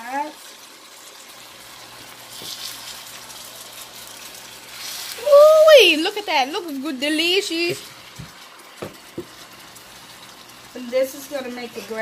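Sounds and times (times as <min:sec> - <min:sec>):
liquid hissing in hot pan: 0:00.0 - 0:12.0
woman exclaiming: 0:05.2 - 0:06.2.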